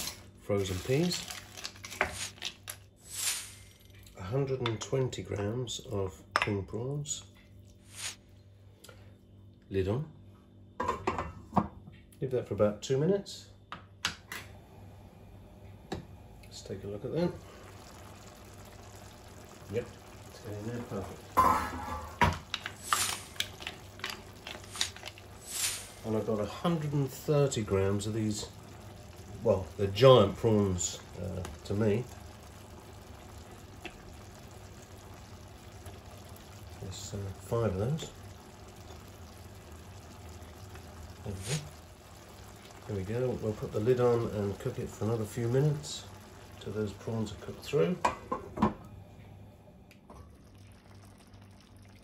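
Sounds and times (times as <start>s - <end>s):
faint simmering in a pan: 0.0s - 9.3s, 14.5s - 52.0s.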